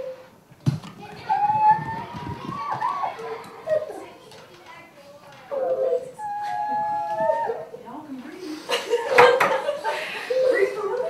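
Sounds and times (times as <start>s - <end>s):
children calling out: 0.9s - 8.0s, 8.9s - 11.0s.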